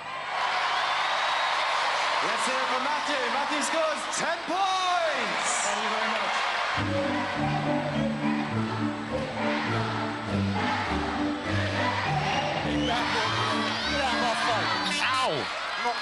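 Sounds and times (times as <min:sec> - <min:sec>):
crowd cheering: 0:00.0 - 0:16.0
arena music with bass line: 0:06.8 - 0:15.5.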